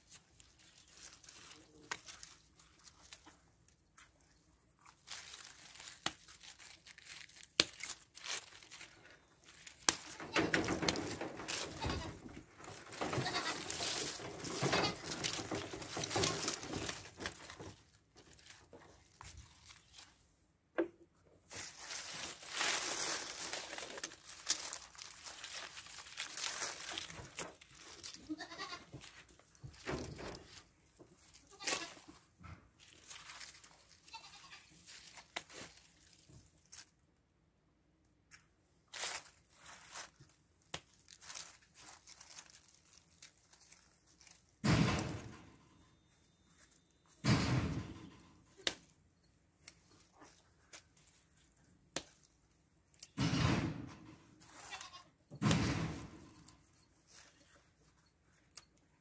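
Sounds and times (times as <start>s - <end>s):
dry leaves rustling and crackling: 0.0s - 20.2s, 21.5s - 32.2s, 32.8s - 36.9s, 38.9s - 45.3s.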